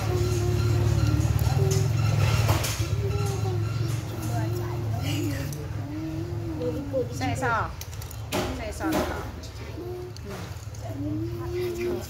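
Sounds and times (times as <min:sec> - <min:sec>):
children speaking: 0:00.0 - 0:12.0.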